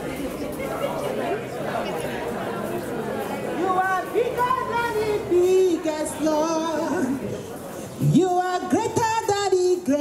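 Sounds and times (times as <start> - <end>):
people talking overlapping: 0.0 - 10.0.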